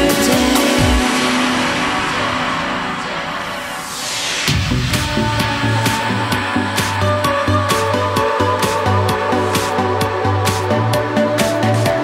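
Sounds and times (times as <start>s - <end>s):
whooshing synth noise sweep: 0.1s - 7.6s.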